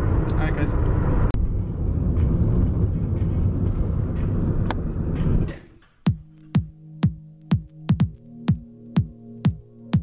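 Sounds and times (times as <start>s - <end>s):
car road and engine rumble: 0.0s - 6.0s.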